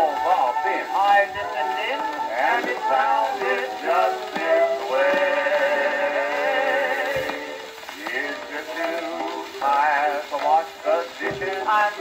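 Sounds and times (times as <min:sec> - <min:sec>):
music from phonograph record: 0:00.0 - 0:12.0.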